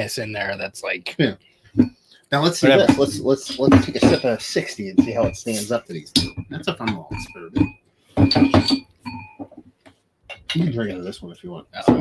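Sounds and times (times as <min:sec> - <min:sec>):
men talking: 0:00.0 - 0:01.4, 0:02.2 - 0:07.7, 0:10.3 - 0:12.0
glasses clinking: 0:02.6 - 0:09.6.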